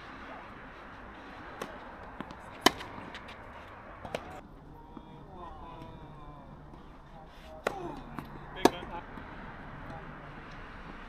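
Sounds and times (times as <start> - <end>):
tennis ball struck by racquet: 1.5 - 3.4, 7.5 - 10.0.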